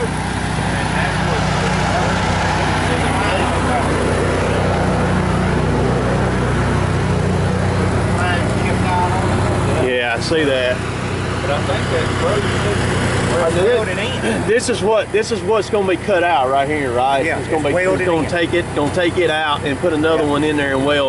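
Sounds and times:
heavy machine engine idling: 0.0 - 21.0.

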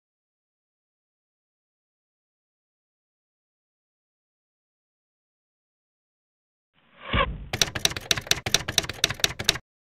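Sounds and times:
typewriter keys clicking: 7.6 - 9.6.

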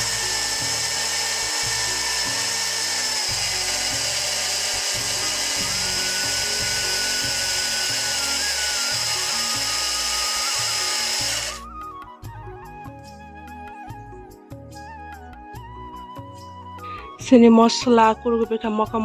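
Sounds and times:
electric mixer grinder running: 0.0 - 11.8.

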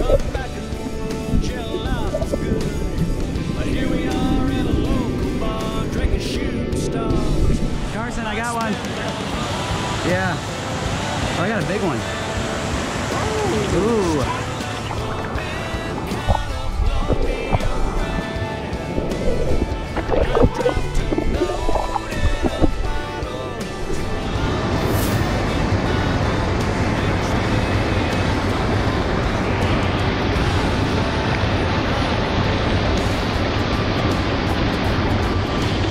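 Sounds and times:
country song with singing: 0.0 - 35.9
mountain stream rushing: 0.0 - 35.9
music: 0.0 - 35.9.

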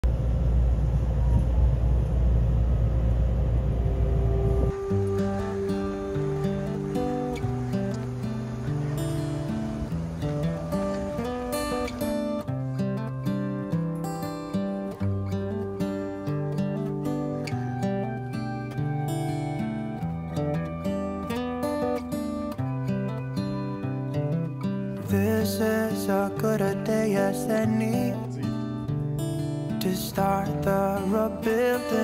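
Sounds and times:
train carriage rumbling: 0.0 - 12.5
acoustic guitar music: 3.6 - 32.0.

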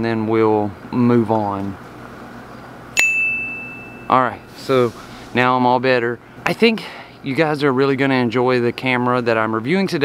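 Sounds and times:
bell-like ding: 3.0 - 4.2.

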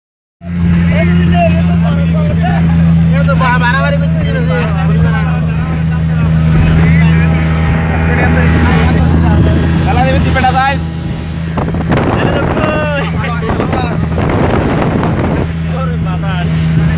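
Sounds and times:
speedboat engine running: 0.4 - 16.9.

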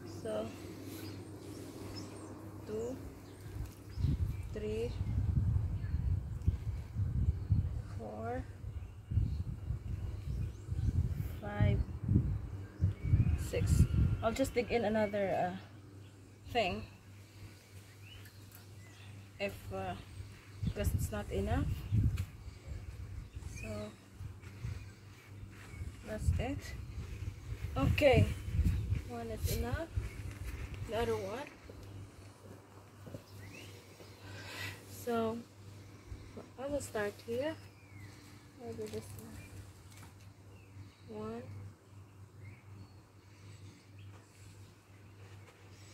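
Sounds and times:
low steady hum: 0.0 - 45.9.

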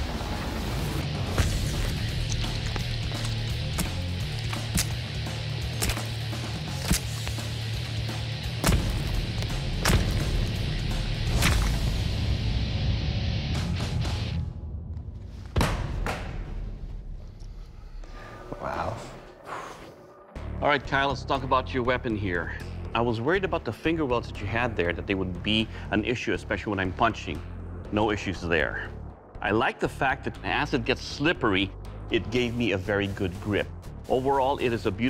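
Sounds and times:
dramatic background music: 0.0 - 35.0.

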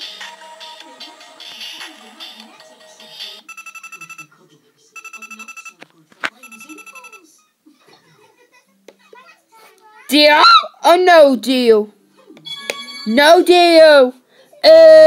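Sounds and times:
rapid trilling telephone ring: 6.4 - 7.2.

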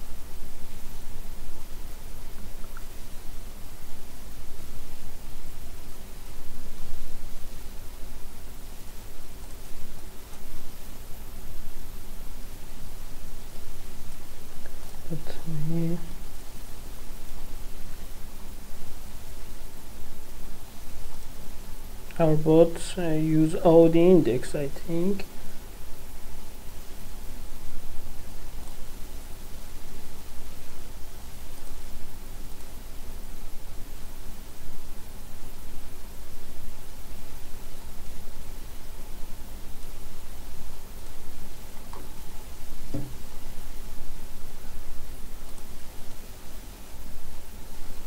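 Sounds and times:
faint low hum: 0.0 - 48.0
microphone background hiss: 0.0 - 48.0.

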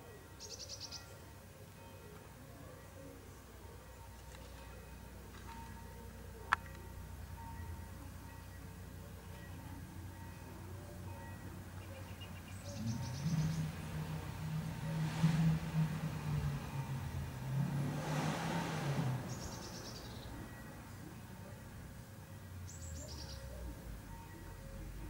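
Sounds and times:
vehicle engine hum passing: 11.6 - 25.0.

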